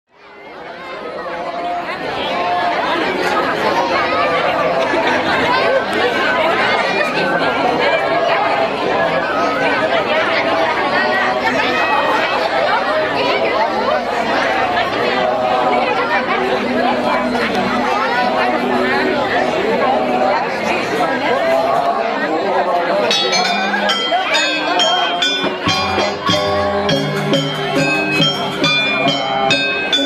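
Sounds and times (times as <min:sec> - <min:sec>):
crowd chattering: 0:00.1 - 0:30.0.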